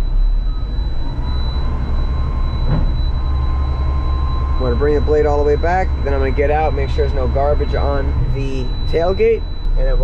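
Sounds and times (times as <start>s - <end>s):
faint hydraulic whine: 0.0s - 10.0s
truck engine and hydraulics droning: 0.0s - 10.0s.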